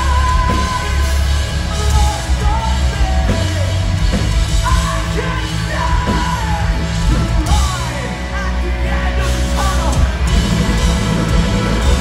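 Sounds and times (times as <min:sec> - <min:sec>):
distorted electric guitar: 0:00.0 - 0:12.0
drums: 0:00.0 - 0:12.0.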